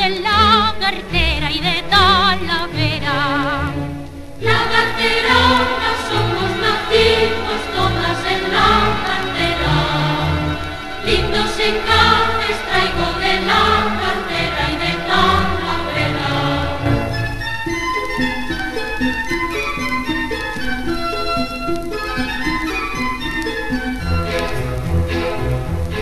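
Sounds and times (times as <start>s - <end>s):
symphony orchestra playing: 0.3s - 26.0s
mixed choir singing: 4.4s - 17.2s.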